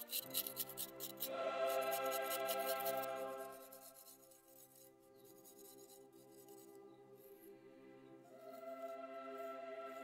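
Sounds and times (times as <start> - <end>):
stick scraping earth wall: 0.0 - 6.8
faint music with held notes: 0.0 - 10.0.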